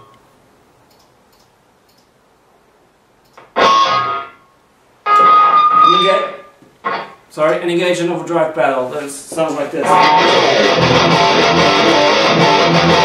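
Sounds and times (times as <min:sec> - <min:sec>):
electric guitar chords: 0:03.5 - 0:04.4, 0:05.0 - 0:07.1, 0:09.8 - 0:13.0.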